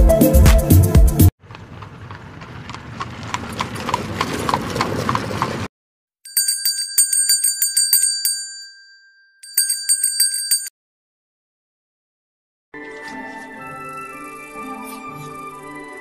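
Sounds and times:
small bell ringing rapidly: 6.3s - 10.7s.

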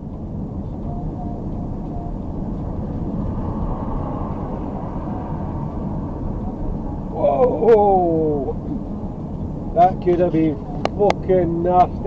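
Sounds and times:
lorry diesel engine rumble: 0.0s - 12.0s
tyres on wet road: 0.0s - 12.0s.

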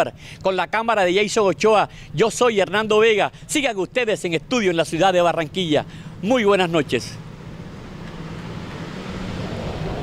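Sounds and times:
car approaching: 1.1s - 10.0s.

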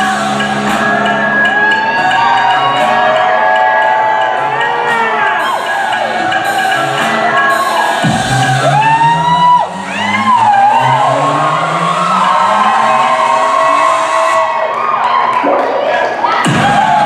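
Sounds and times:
audience cheering and whooping: 0.0s - 17.0s
recorded music playing: 0.0s - 17.0s.

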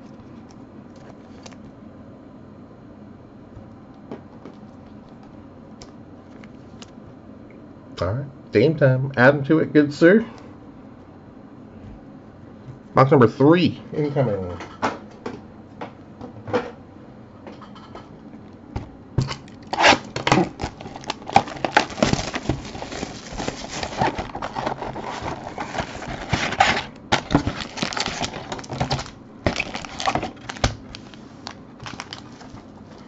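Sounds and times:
foil packs crinkling: 19.2s - 33.0s.

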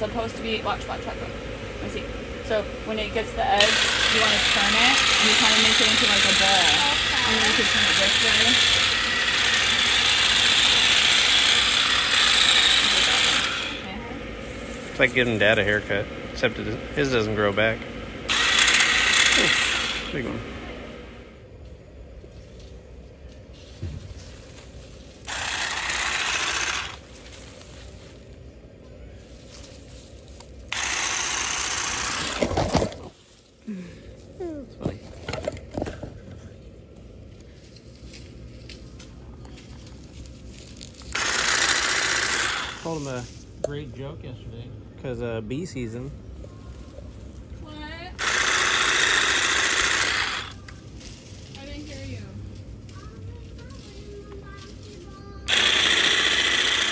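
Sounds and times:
electric hedge trimmer running: 0.0s - 21.3s, 25.2s - 27.2s, 30.7s - 33.2s, 41.1s - 43.1s, 48.2s - 50.7s, 55.5s - 56.9s.

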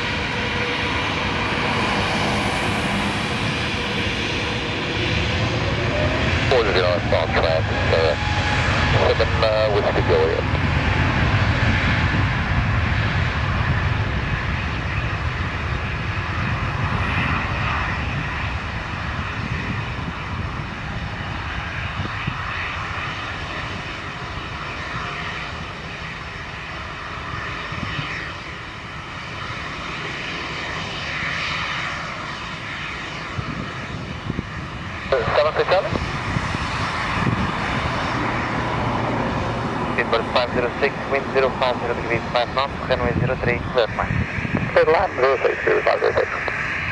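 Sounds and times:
jet engines at takeoff: 0.0s - 46.9s.

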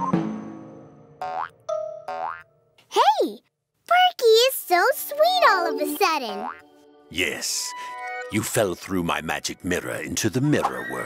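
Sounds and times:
cartoon springy boings: 1.2s - 2.5s.

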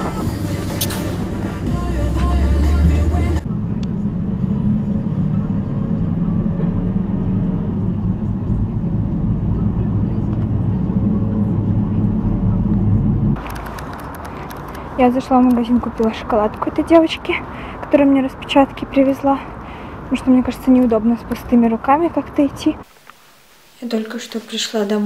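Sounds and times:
music: 0.0s - 3.4s
engine and road rumble: 0.0s - 23.1s
street noise: 0.0s - 25.0s.

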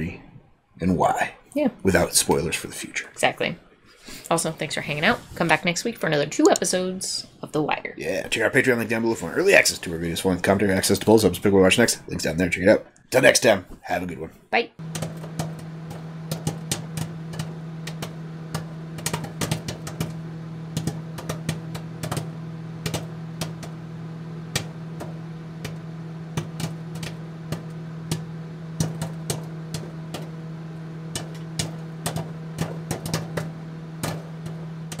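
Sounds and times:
sharp clicks and ticks: 6.4s - 6.8s, 14.8s - 23.8s, 24.5s - 35.0s.

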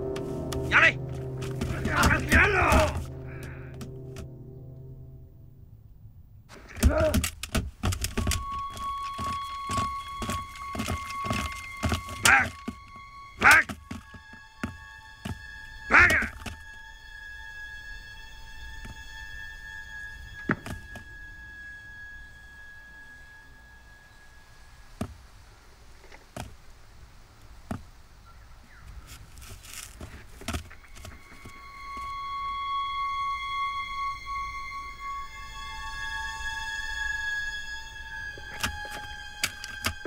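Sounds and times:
heavy thuds: 0.0s - 4.3s, 6.5s - 16.6s
music of long held notes: 0.0s - 25.5s, 29.6s - 40.0s.

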